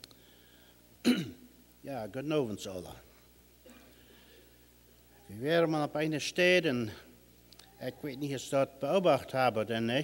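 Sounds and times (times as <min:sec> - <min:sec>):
man clearing his throat: 0:01.0 - 0:01.5
speech: 0:01.9 - 0:03.1, 0:05.1 - 0:10.0.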